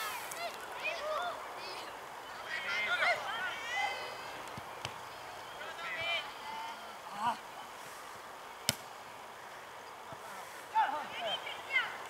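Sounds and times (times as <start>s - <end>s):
young players shouting: 0.0s - 4.3s.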